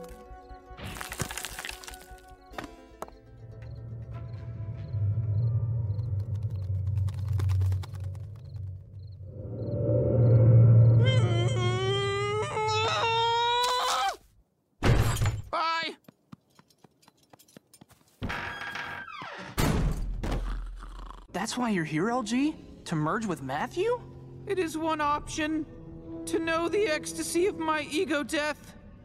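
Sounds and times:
dense crackling sound effect: 5.2 - 9.8
wailing voice: 11.0 - 14.2.

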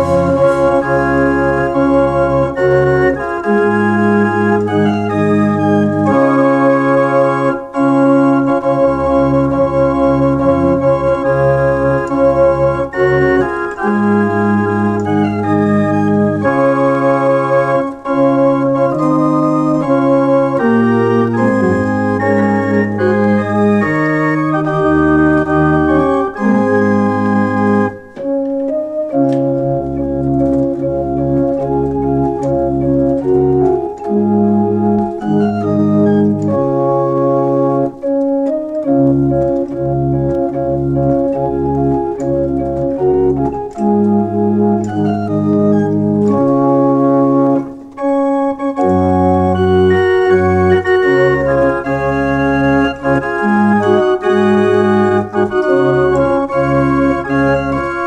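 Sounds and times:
pipe organ folk melody: 0.0 - 58.0.

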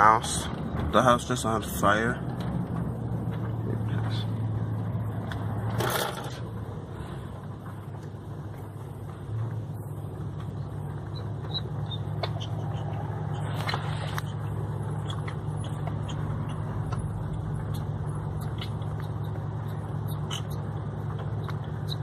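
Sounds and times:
car engine and road hum: 0.0 - 22.0.

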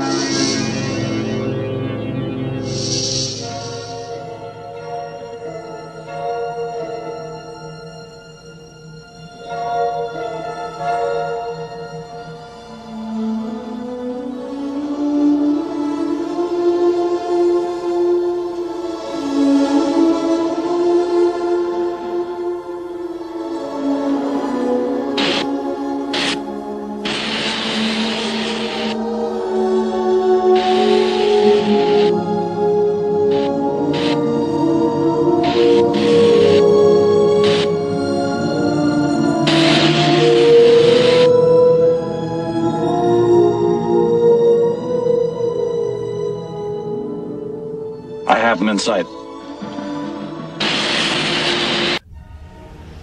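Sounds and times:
airlock air hiss: 0.0 - 4.8, 23.6 - 41.6, 50.4 - 52.1
ambient music tones: 0.0 - 53.0.

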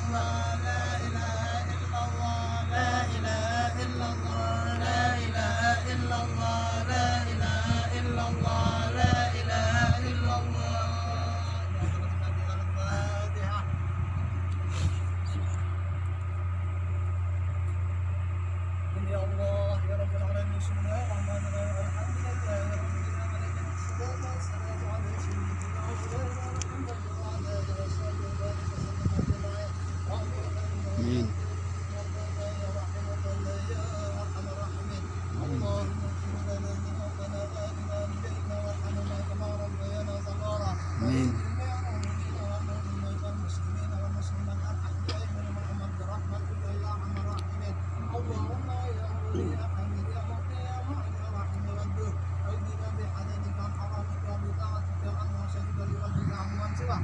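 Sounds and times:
man singing: 0.0 - 11.8
loud steady low hum: 0.0 - 57.0
faint talking: 22.1 - 39.3, 40.2 - 42.6, 47.2 - 51.4.

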